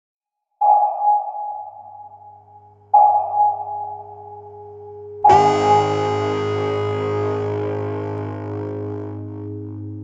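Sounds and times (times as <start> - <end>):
sonar pings: 0.6 - 7.1.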